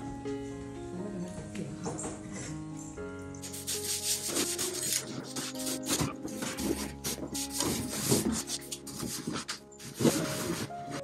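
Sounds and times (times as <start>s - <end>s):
background music: 0.0s - 11.0s
cardboard box scraping floor: 3.8s - 11.0s.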